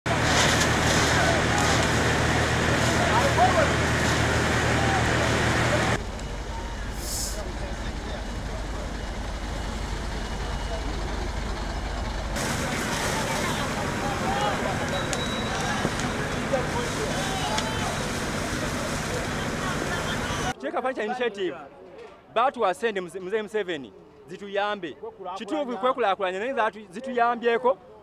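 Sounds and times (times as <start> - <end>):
fire truck engine running: 0.0 - 20.6
people's voices: 0.1 - 28.0
loud hiss: 6.8 - 7.9.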